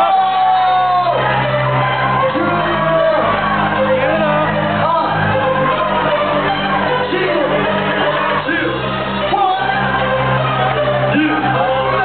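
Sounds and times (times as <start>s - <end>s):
bass-heavy hip-hop beat: 0.0s - 12.0s
person shouting and singing: 11.1s - 12.0s.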